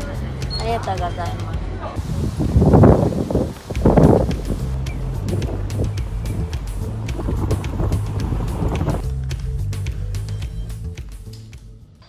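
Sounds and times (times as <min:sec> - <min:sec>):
background music: 0:00.0 - 0:12.0
wind buffeting microphone: 0:02.0 - 0:09.1.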